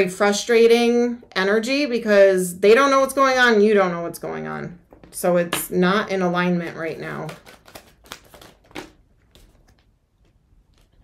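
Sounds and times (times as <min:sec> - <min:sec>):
cards flicking and rustling: 0:06.6 - 0:11.0
cards slapping: 0:06.6 - 0:11.0.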